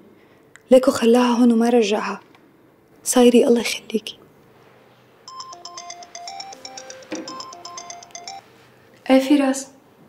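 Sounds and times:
mobile phone ringtone: 5.3s - 8.6s.

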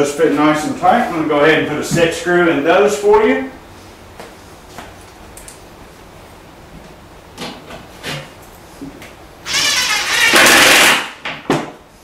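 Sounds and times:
cordless drill whirring: 9.5s - 11.0s.

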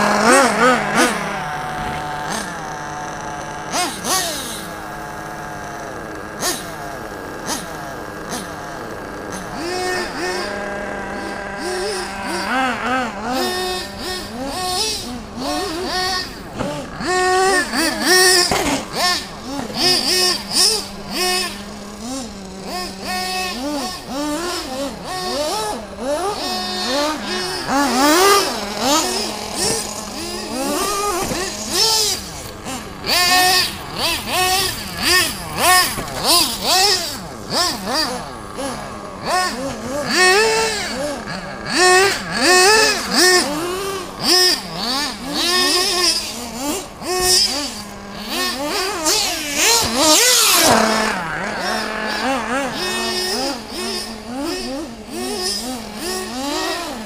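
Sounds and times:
radio-controlled car motors revving: 0.0s - 57.0s
steady drone: 0.0s - 57.0s.

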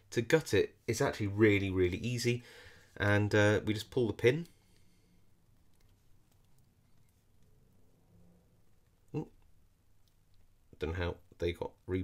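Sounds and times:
person speaking: 0.0s - 7.4s, 9.0s - 9.6s, 10.6s - 12.0s.

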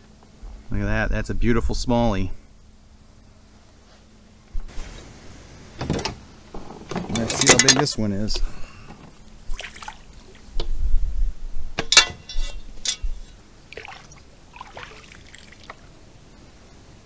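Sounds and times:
water dripping: 13.7s - 15.8s.

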